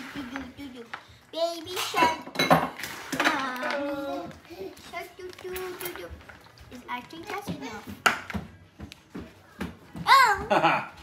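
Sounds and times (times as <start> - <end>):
light kitchen taps and knocks: 1.7 - 3.4, 7.0 - 10.8.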